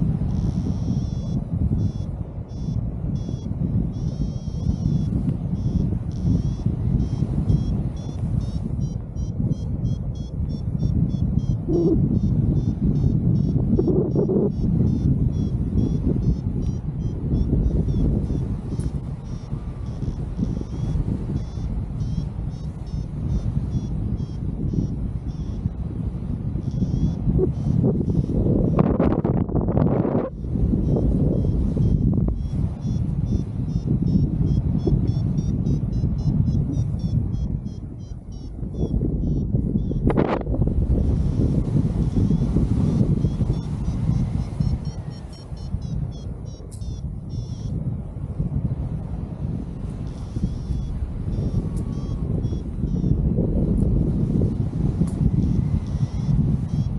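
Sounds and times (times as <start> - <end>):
variometer beeping: 0.0 - 56.9
wind buffeting microphone: 0.0 - 56.9.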